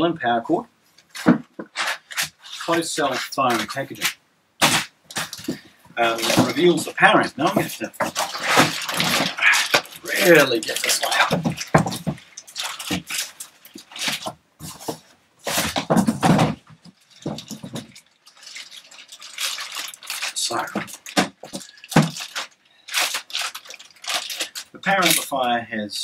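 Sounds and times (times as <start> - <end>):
cardboard rustling and scraping: 1.0 - 25.3
thick plastic bag crinkling: 1.0 - 25.4.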